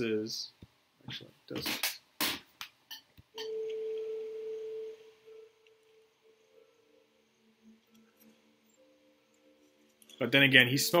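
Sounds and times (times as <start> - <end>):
softer lower tones: 3.4 - 10.9
steady pure tone: 3.4 - 11.0.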